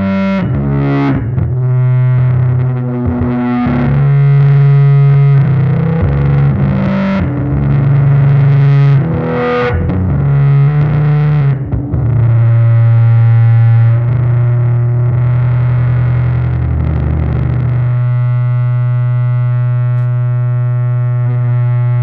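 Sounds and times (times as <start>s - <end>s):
distorted electric bass drone: 0.0s - 22.0s.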